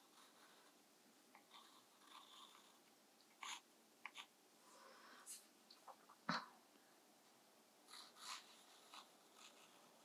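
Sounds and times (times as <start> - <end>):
pencil scratching on paper: 0.0 - 0.8, 1.4 - 2.8, 3.4 - 4.3, 7.9 - 10.0.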